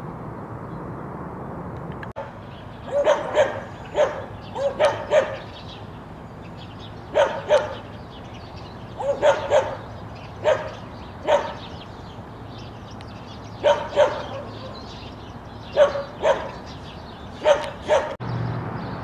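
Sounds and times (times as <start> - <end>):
dog barking: 2.2 - 5.5, 7.1 - 7.9, 9.0 - 11.7, 13.6 - 14.8, 15.7 - 16.7, 17.4 - 18.2.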